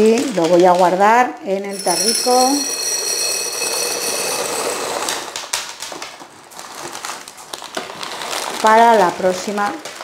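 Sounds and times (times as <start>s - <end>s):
beans rattling into glass jar: 1.7s - 5.4s
thin high ringing: 1.7s - 5.4s.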